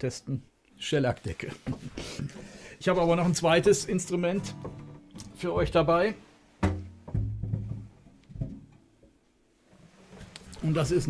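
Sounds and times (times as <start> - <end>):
guitar strings ringing: 3.4 - 9.0
knock on guitar body: 6.6 - 8.8.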